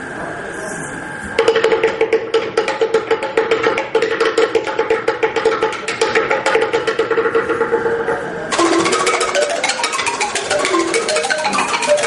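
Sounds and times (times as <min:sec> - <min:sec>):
wooden percussion strikes: 0:01.3 - 0:12.0
xylophone fast run: 0:01.4 - 0:12.0.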